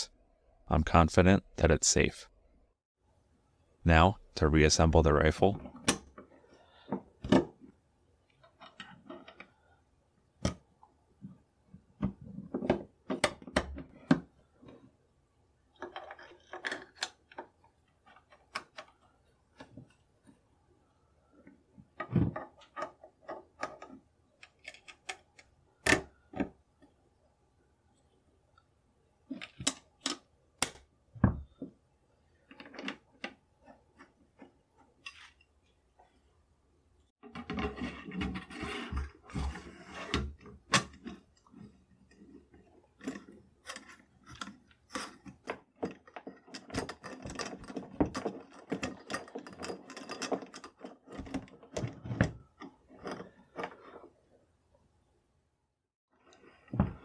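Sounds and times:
metal scraping on metal and wood: 37.2s - 54.4s.

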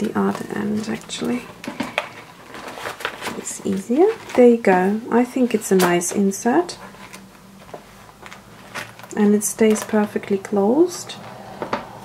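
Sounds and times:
paper rustling and tapping: 0.0s - 11.9s
steady low hum: 0.0s - 12.0s.

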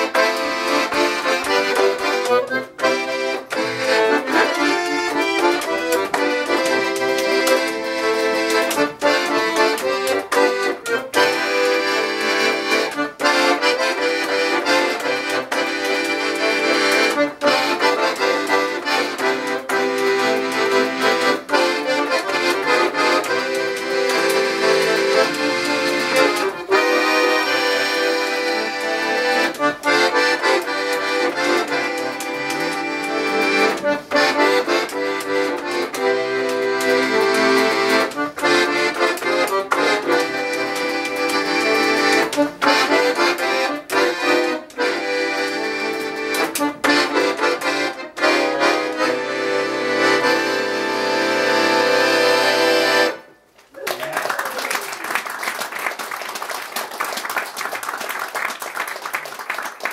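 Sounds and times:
accordion playing melody: 0.0s - 53.6s.

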